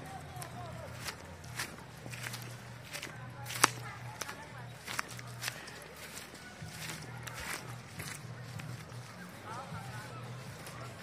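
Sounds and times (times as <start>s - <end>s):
footsteps through grass and leaves: 0.0s - 11.0s.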